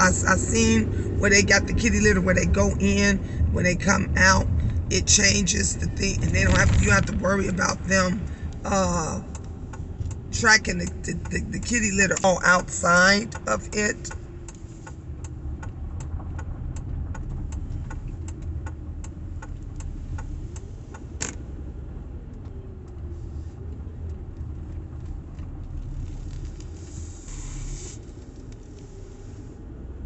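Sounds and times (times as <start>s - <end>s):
engine and road rumble: 0.0s - 30.0s.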